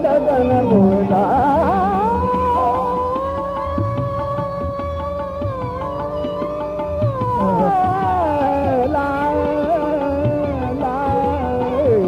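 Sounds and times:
man singing gliding note: 0:00.0 - 0:12.0
tabla strokes: 0:00.0 - 0:12.0.

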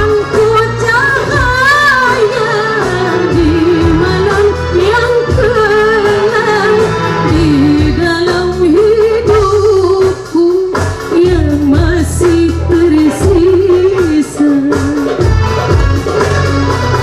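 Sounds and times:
woman singing: 0:00.0 - 0:15.6
keyboard: 0:00.0 - 0:17.0
hand drum: 0:05.2 - 0:17.0.

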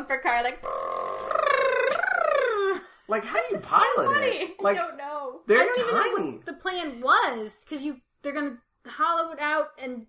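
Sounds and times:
person imitating a vehicle: 0:00.5 - 0:04.8, 0:05.5 - 0:06.4.

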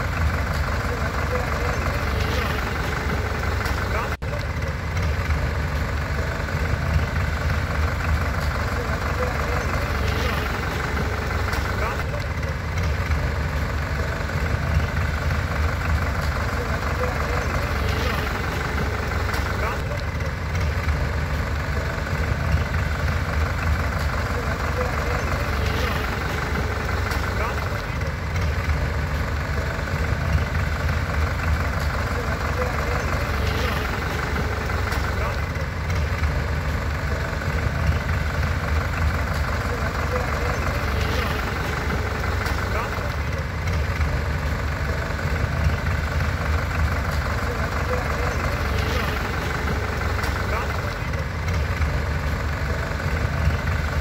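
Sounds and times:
diesel tractor engines idling: 0:00.0 - 0:54.0.

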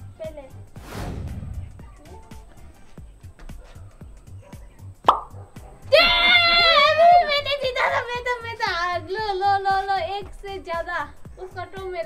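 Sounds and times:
background music with low beat: 0:00.0 - 0:12.0
pop with upward pitch swoop: 0:05.1 - 0:05.3.

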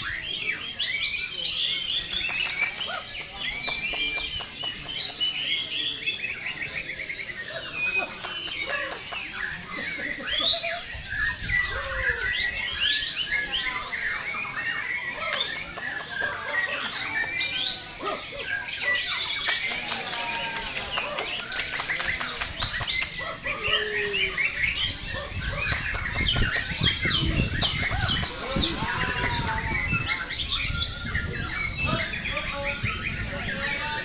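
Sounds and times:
birds chirping and trilling: 0:00.0 - 0:34.0
high bird whistles: 0:21.5 - 0:33.7.

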